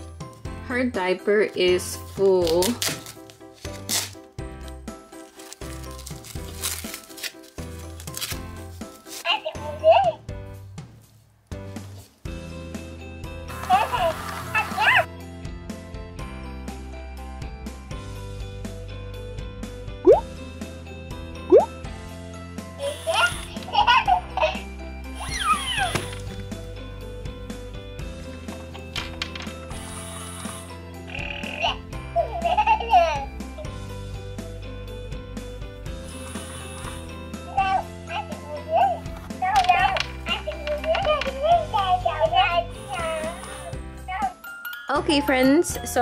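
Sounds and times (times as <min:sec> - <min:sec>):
toy crib mobile tune: 0:38.6 - 0:46.0.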